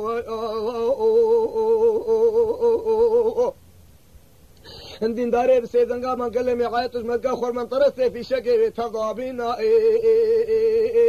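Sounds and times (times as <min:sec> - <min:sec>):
man singing unaccompanied: 0:00.0 - 0:03.6, 0:04.6 - 0:11.0.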